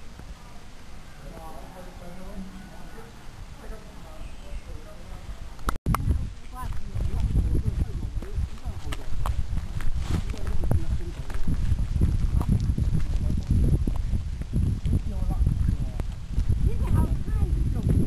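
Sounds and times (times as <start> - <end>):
footsteps on dirt path: 6.4 - 18.0.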